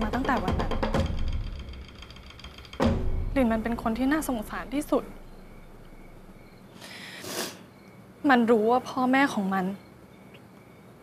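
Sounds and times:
dramatic score with drums: 0.0 - 6.6
low hum: 0.0 - 6.8
faint steady high tones: 1.8 - 11.0.

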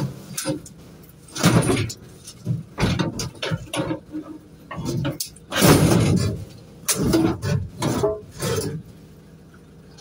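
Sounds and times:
scrap metal clattering and scraping: 0.0 - 9.0.

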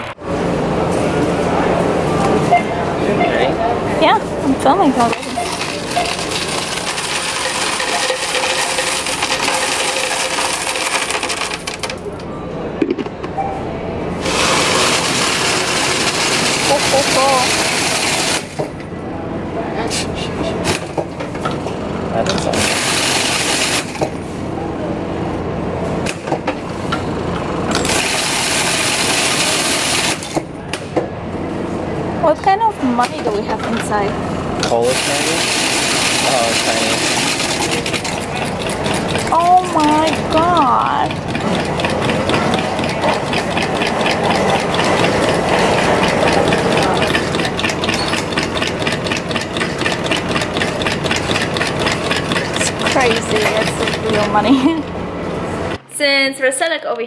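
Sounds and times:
coins rattling through counting machine: 4.9 - 12.2, 14.2 - 18.9, 22.4 - 24.3, 27.7 - 30.5, 34.6 - 54.7
coins clattering into a tray: 5.2 - 12.2, 22.6 - 24.2, 34.6 - 39.8.

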